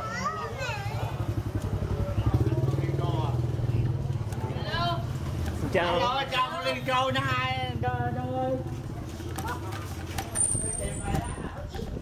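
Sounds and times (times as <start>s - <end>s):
motor scooter engine running: 0.7s - 12.0s.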